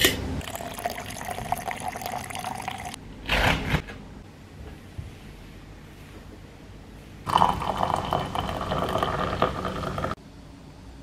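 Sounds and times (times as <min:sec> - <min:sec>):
liquid pouring into a cup: 0:00.4 - 0:03.0, 0:07.3 - 0:10.2.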